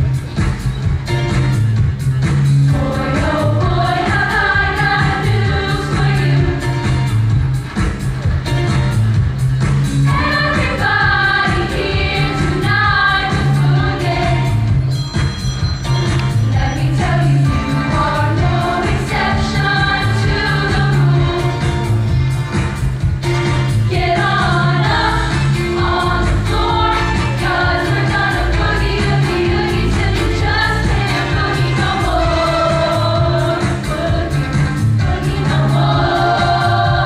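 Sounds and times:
accompaniment with steady beat: 0.0 - 37.0
band with strong bass line: 0.0 - 37.0
girls choir singing in harmony: 2.7 - 7.0, 10.0 - 14.8, 16.5 - 21.9, 23.8 - 37.0.

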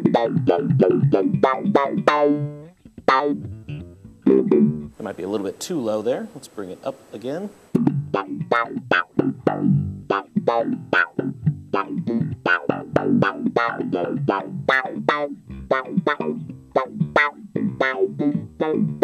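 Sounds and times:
slap bass funk riff: 0.0 - 5.4, 7.7 - 19.0.

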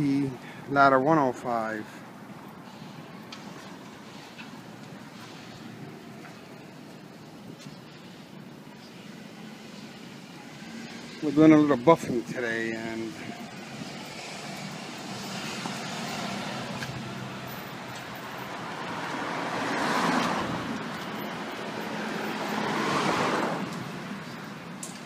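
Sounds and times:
vehicles passing: 0.0 - 25.0.

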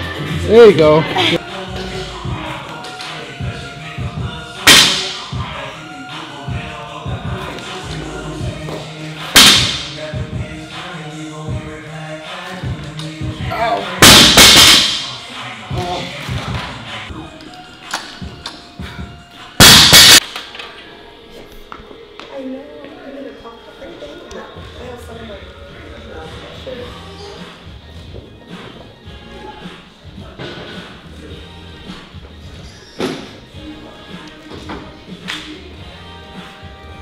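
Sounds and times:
background music: 0.0 - 37.0
barbell crashing onto platform: 14.0 - 15.1.

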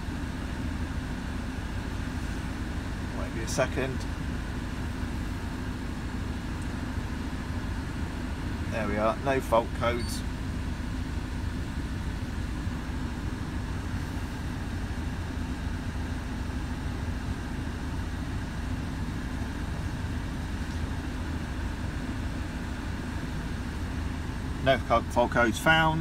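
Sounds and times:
diesel engine idling: 0.0 - 26.0.

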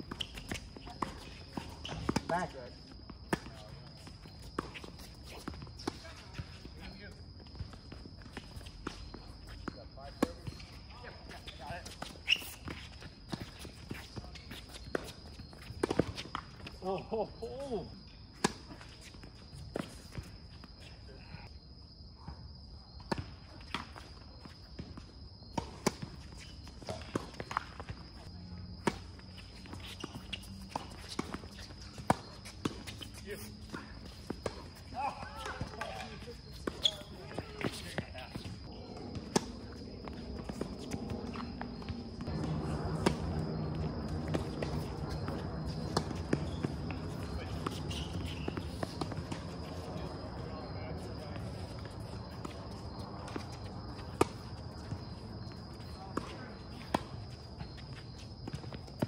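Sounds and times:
footsteps on hard court: 0.0 - 16.8, 23.0 - 59.0
tennis ball bouncing: 0.1 - 6.6, 28.7 - 59.0.

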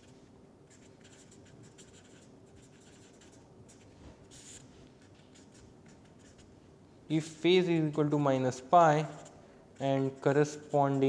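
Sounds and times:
marker pen writing on paper: 0.0 - 11.0.

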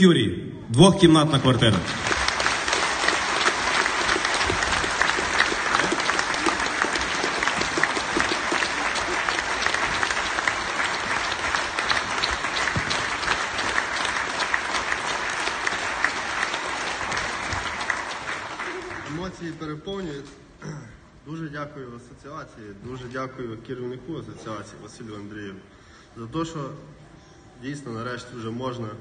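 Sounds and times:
audience applauding: 1.2 - 19.4.

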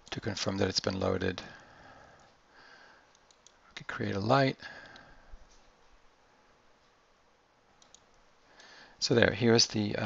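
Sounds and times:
computer mouse clicks: 3.1 - 3.6, 7.8 - 8.7.

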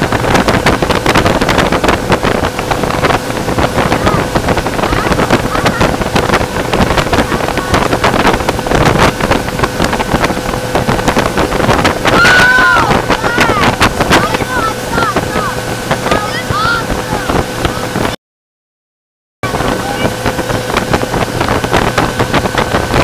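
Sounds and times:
motorboat engine humming: 0.0 - 18.2, 19.4 - 23.0
rush of boat wake: 0.0 - 18.2, 19.4 - 23.0
wind buffeting microphone: 0.0 - 18.2, 19.4 - 23.0
person calling out loudly: 12.2 - 17.3.

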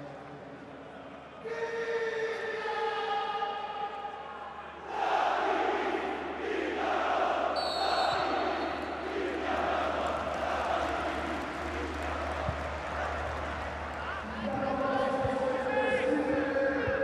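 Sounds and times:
football crowd singing and chanting: 2.7 - 17.0
referee's whistle: 7.6 - 8.9.

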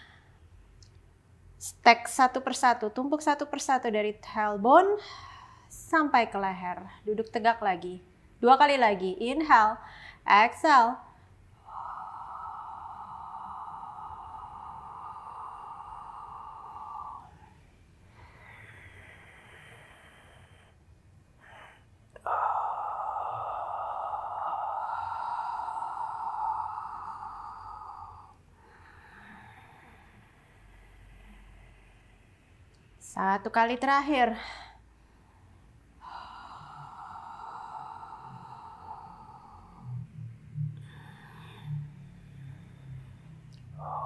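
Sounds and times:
woman inhaling: 0.0 - 0.6, 4.9 - 5.9, 9.8 - 10.3, 11.0 - 32.8, 34.3 - 44.0
woman exhaling forcefully: 11.5 - 20.8, 21.4 - 31.4, 36.0 - 40.2, 40.8 - 44.0.

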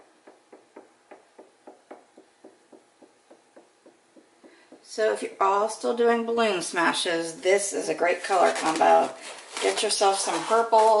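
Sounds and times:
balloon tapping on wet paint: 0.0 - 4.9.

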